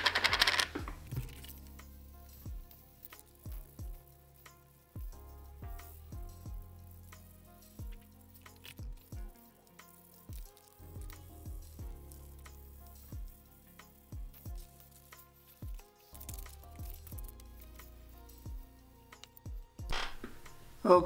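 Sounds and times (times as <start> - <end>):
background music with drum beat: 2.3 - 4.1, 5.0 - 8.0, 8.8 - 9.4, 10.4 - 18.8, 19.4 - 21.0.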